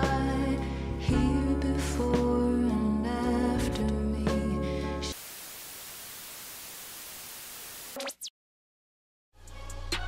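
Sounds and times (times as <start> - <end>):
music: 0.0 - 5.1, 9.3 - 10.0
tv static hiss: 5.1 - 8.3.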